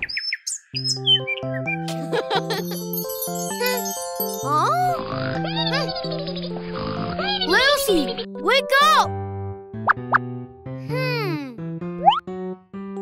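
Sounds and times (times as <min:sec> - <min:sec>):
cartoon background music: 0:00.0 - 0:13.0.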